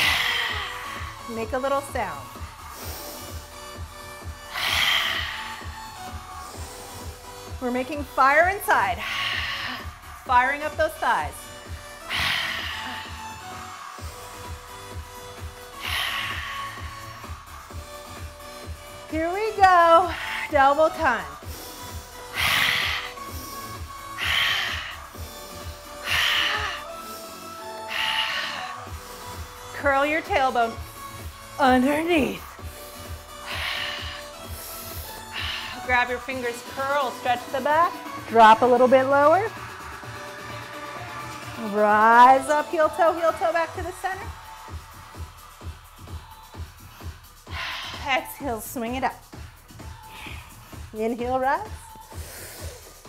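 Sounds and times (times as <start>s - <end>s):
woman exhaling breathily: 0.0s - 1.2s, 12.0s - 13.4s, 26.0s - 28.8s
woman breathing forcefully: 0.0s - 1.6s, 2.2s - 7.6s, 8.5s - 31.6s, 32.4s - 38.3s, 44.4s - 48.6s, 49.2s - 51.0s, 51.9s - 53.0s
background music with steady beat: 0.0s - 53.0s.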